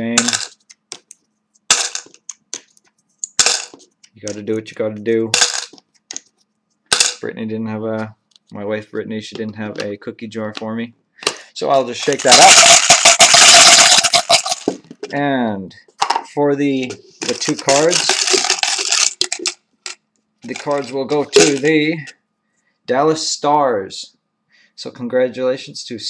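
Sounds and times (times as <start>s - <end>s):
plastic chips clattering into container: 0.0s - 1.1s, 1.7s - 3.8s, 5.4s - 6.2s, 6.9s - 7.2s, 11.3s - 14.8s, 17.2s - 21.7s.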